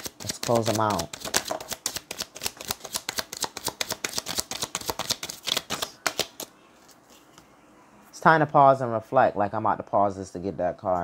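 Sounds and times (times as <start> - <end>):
cards being shuffled: 0.0 - 7.2.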